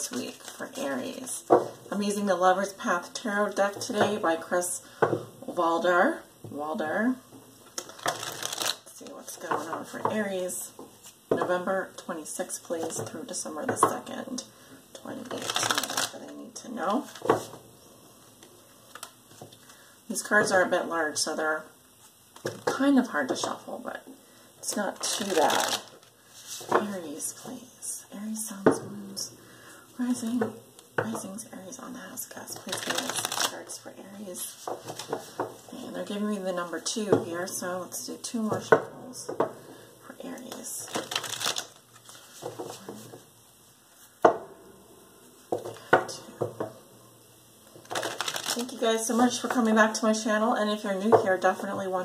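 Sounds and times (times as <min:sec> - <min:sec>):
cards being shuffled: 0:07.8 - 0:08.8, 0:15.2 - 0:16.2, 0:24.9 - 0:26.7, 0:32.6 - 0:33.6, 0:40.5 - 0:42.8, 0:47.8 - 0:48.8.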